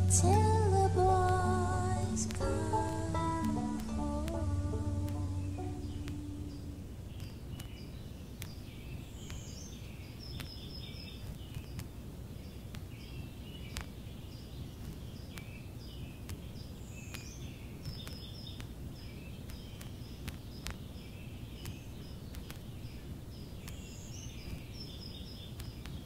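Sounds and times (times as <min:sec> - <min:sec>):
low steady rumble: 0:00.0 - 0:08.2
small birds chirping: 0:00.0 - 0:26.0
faint clicks: 0:05.9 - 0:12.0, 0:12.6 - 0:14.0, 0:16.2 - 0:20.8, 0:21.6 - 0:26.0.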